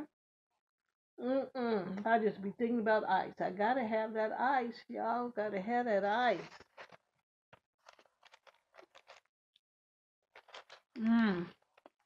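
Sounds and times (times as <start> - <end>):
chewing crunchy food: 7.9 - 9.3, 10.4 - 12.0.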